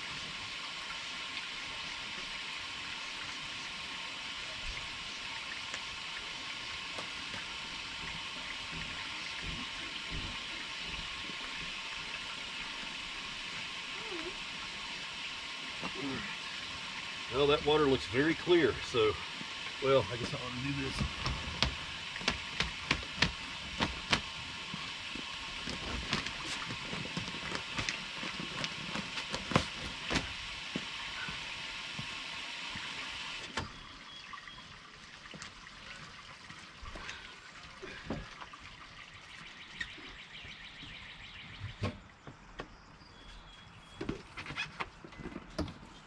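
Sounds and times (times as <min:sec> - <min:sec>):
water gurgling through hose: 0:00.0 - 0:40.2
hoses knocking: 0:19.4 - 0:32.2.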